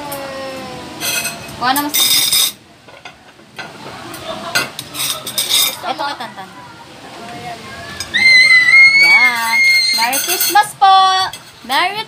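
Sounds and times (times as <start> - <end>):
cutlery and plates clinking: 1.0 - 6.0, 9.2 - 12.0.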